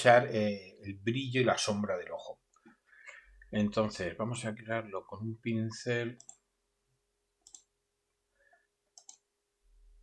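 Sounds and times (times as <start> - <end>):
faint computer mouse clicks: 7.4 - 7.7, 9.0 - 9.2.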